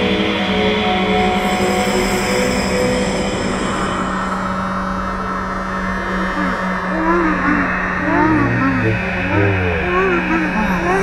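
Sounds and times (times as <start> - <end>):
low drone: 1.6 - 11.0
noisy electronic texture: 6.4 - 11.0.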